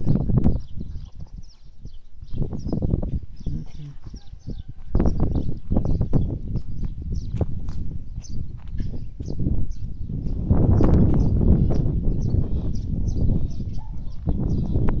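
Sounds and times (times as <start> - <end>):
footsteps on grass and dirt: 0.0 - 11.3
small birds chirping: 0.0 - 15.0
wind rumbling on microphone: 0.0 - 15.0.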